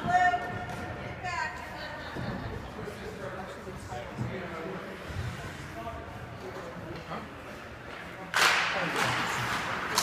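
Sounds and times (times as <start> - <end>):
skates and sticks scraping ice: 7.3 - 10.0
hockey sticks cracking: 7.8 - 10.0.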